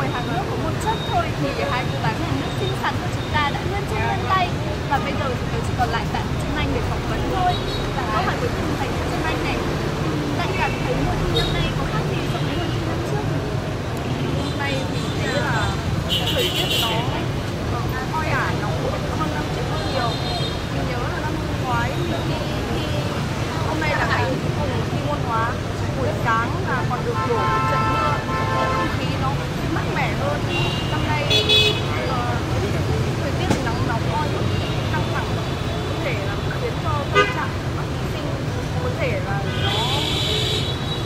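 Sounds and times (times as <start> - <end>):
young woman talking: 0.0 - 13.4, 14.3 - 40.1
low rumble of street traffic: 0.0 - 41.0
voices: 0.0 - 41.0.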